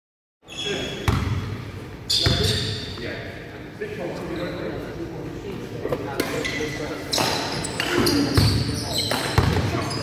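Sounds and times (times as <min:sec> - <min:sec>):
basketball bouncing on wooden floor: 0:09.4 - 0:09.7.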